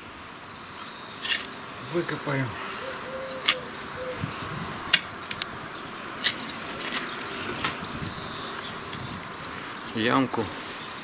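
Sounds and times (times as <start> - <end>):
spade scraping into soil: 1.2 - 1.6.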